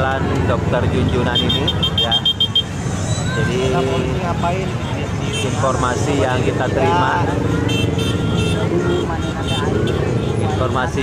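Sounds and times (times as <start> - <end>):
crowd voices talking: 0.0 - 11.0
motorcycle engines running: 0.0 - 11.0.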